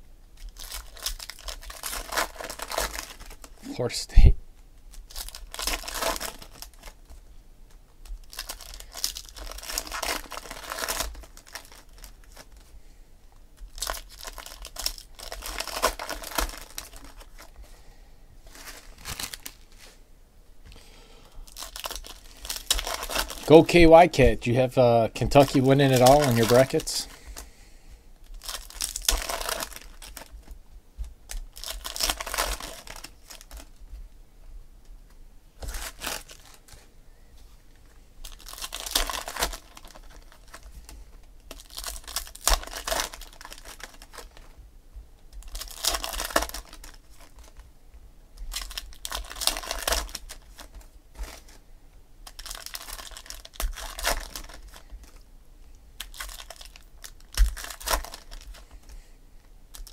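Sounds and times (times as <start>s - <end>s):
foil packs tearing and crinkling: 0.4s - 3.6s, 4.9s - 7.2s, 8.1s - 12.7s, 13.6s - 17.5s, 18.5s - 19.8s, 21.5s - 23.7s, 25.2s - 27.2s, 28.3s - 30.5s, 31.3s - 33.7s, 35.6s - 36.8s, 38.2s - 44.5s, 45.4s - 47.6s, 48.4s - 51.6s, 52.2s - 55.2s, 56.0s - 59.0s.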